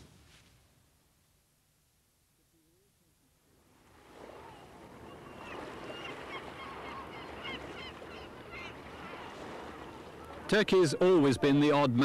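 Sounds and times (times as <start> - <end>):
outdoor ambience hiss: 0.0 - 4.6
gulls calling: 4.2 - 12.0.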